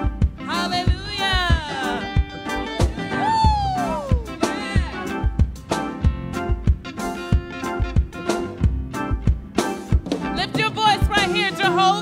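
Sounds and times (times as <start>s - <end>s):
steady drum beat: 0.0s - 12.0s
woman singing into a microphone: 0.5s - 2.2s.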